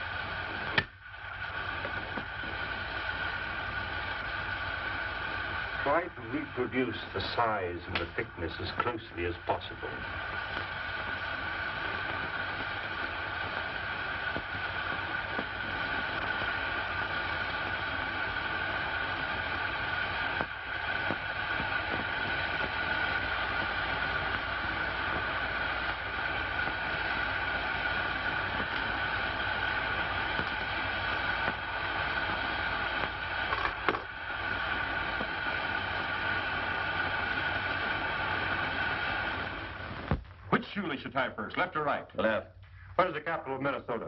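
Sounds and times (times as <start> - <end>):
torch flame burning: 0.0 - 44.0.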